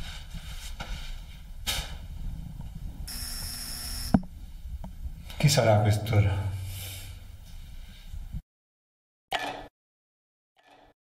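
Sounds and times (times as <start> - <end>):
doorbell buzzer: 3.1 - 4.2.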